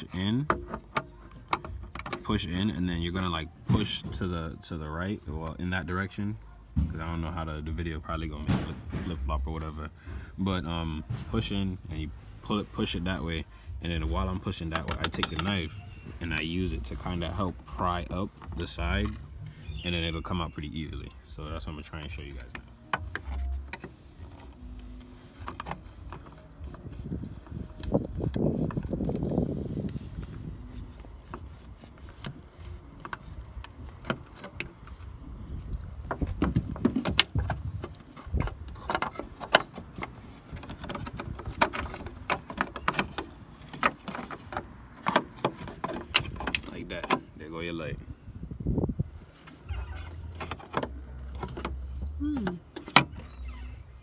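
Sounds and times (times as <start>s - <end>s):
tools clicking and scraping plastic: 0.0s - 2.3s, 22.0s - 29.5s, 30.9s - 47.3s, 49.4s - 53.3s.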